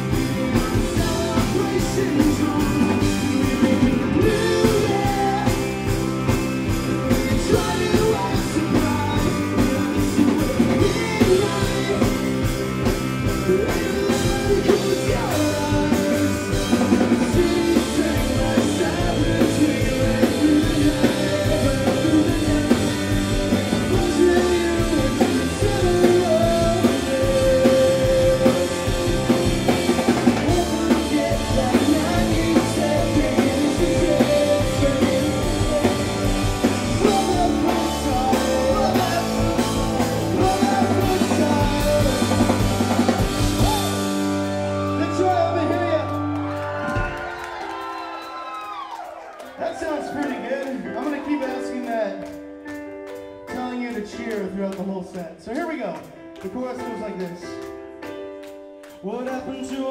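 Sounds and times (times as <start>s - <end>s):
man singing lead vocal: 0.0s - 46.0s, 59.0s - 59.9s
bass guitar: 0.0s - 49.0s
drum kit: 0.0s - 59.9s
electric guitars: 0.0s - 59.9s
keyboard: 0.0s - 59.9s.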